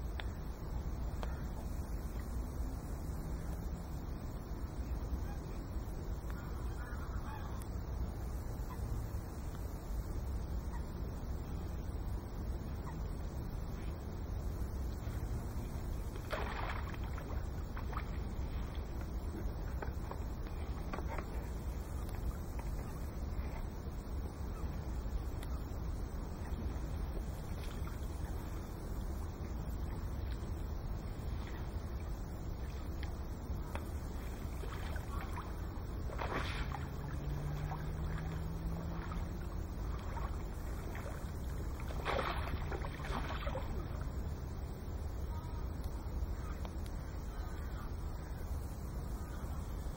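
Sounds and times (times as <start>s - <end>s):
wind rumble on microphone: 0.0s - 49.9s
water splashing at landing net: 15.9s - 23.0s, 33.0s - 44.2s.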